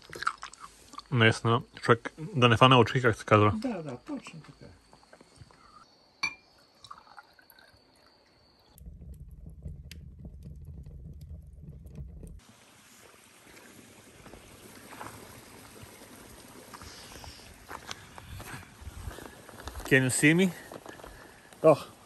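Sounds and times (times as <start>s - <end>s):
steady outdoor hiss: 0.0s - 9.0s, 12.0s - 22.0s
wine poured into a glass: 6.6s - 9.8s
wood fire burning in a stove: 8.7s - 22.0s.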